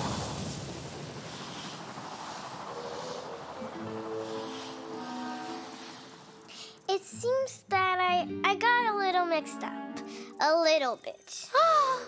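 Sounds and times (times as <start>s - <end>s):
cartoon explosion rush: 0.0s - 3.8s
soft sustained music notes: 2.6s - 10.6s.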